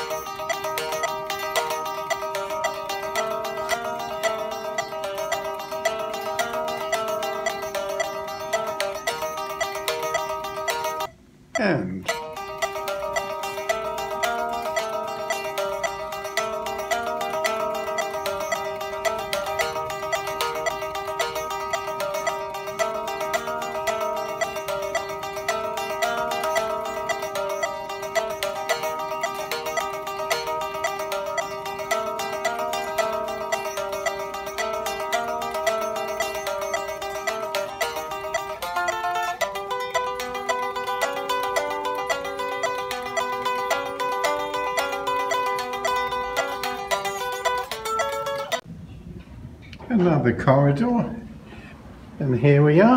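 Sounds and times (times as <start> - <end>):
electric guitar picking: 0.0 - 48.7.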